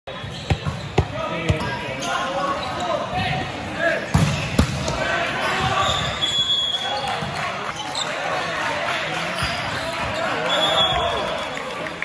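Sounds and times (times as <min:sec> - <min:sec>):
volleyball bouncing on gym floor: 0:00.2 - 0:01.8
ball hits: 0:04.1 - 0:05.0.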